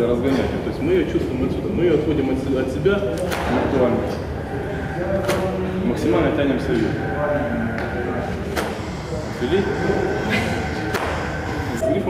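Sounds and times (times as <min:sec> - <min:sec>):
speech in large hall: 0:00.0 - 0:12.0.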